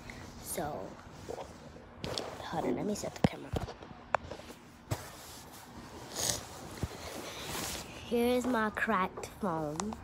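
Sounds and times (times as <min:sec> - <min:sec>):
recording device handling noise: 0:00.9 - 0:10.0
fabric and bedding rustling: 0:04.2 - 0:08.7.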